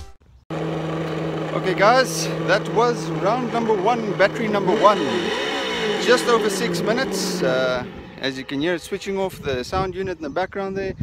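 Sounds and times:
steady low hum: 0.5 - 9.8
man speaking: 1.5 - 10.5.

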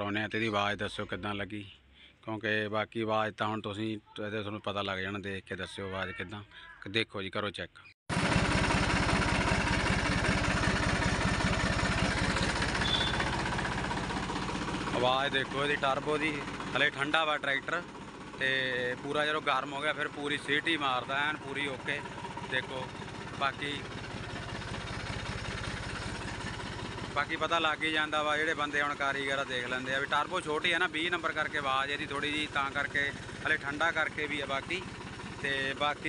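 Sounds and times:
tractor diesel engine idling: 8.1 - 36.0.

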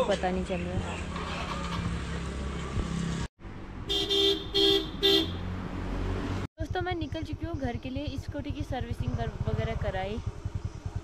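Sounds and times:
engine and traffic hum: 0.0 - 11.0
vehicle horn tooting: 3.9 - 5.4.

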